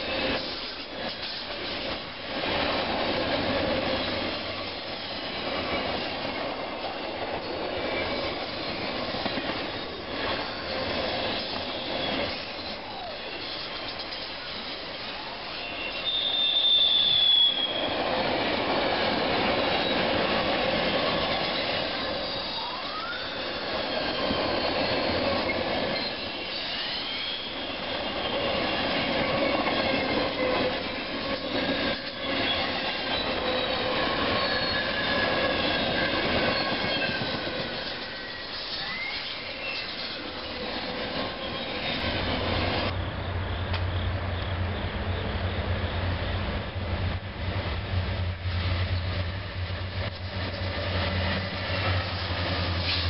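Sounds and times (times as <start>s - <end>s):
train wheels running on rails: 0.0s - 53.0s
high-pitched wheel squeals: 15.4s - 18.0s, 21.3s - 45.2s.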